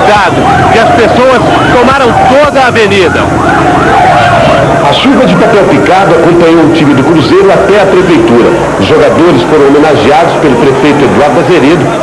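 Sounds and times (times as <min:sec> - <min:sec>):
fire engine siren wailing: 0:00.0 - 0:12.0.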